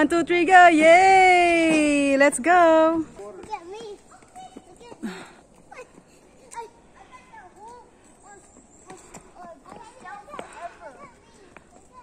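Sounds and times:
children's voices chattering: 3.4 - 12.0.

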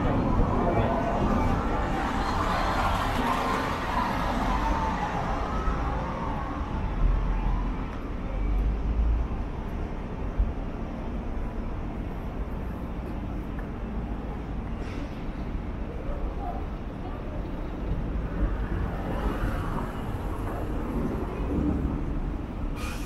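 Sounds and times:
traffic hum: 0.0 - 23.0.

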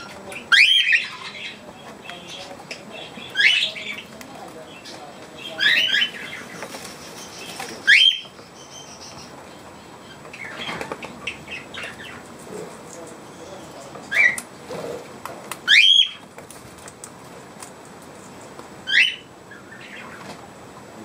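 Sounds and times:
birds chirping: 0.0 - 21.0
bird wings fluttering: 6.5 - 7.9.

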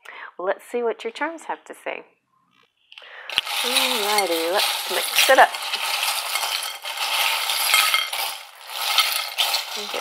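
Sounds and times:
metal charms jingling: 3.3 - 10.0.

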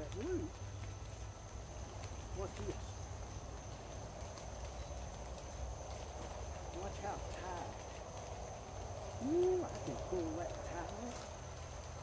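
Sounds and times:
person speaking: 9.2 - 11.2.

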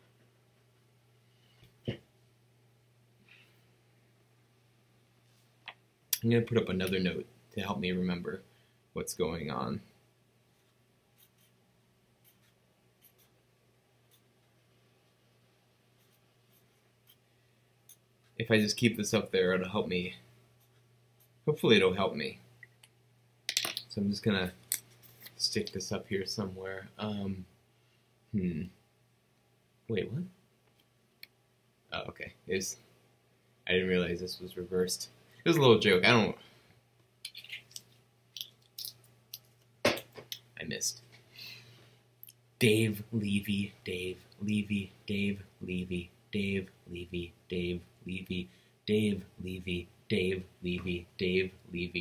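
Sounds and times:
pen scratching on paper: 10.6 - 11.6.

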